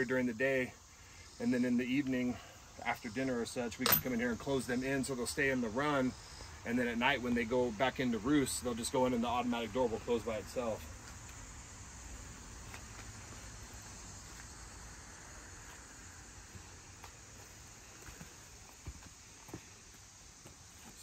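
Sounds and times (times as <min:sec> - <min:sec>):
high insect drone: 0:00.0 - 0:21.0
footsteps: 0:15.6 - 0:21.0.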